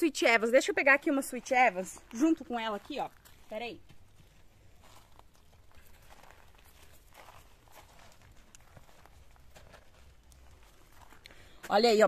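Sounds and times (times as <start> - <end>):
faint footsteps: 0.7 - 12.0.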